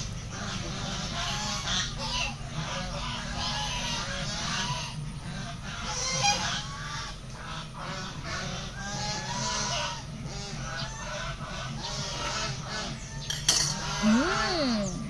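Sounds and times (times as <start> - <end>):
fowl calling: 0.0 - 15.0.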